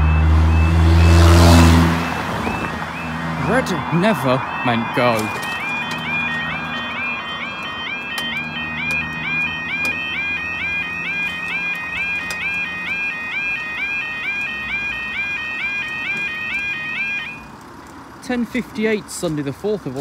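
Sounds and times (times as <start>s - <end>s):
level crossing warbling alarm: 0.0s - 17.6s.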